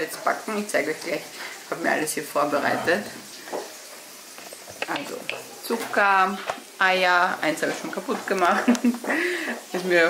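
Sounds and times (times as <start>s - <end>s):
meatballs sizzling in a pan: 0.0s - 10.0s.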